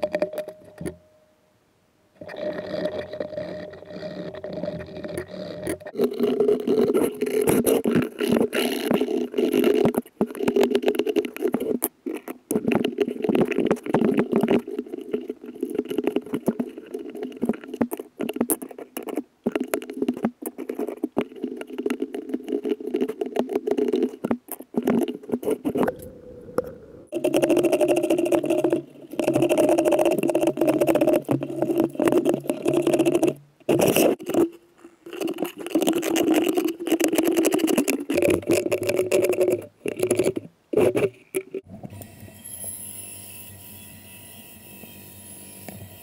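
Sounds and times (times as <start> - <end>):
carving gouge scraping wood: 2.4 - 25.9, 27.1 - 41.6
steady hum: 25.8 - 32.0.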